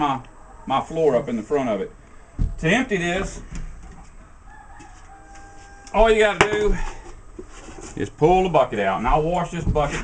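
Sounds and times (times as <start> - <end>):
rooster crowing faintly: 0.0 - 7.0.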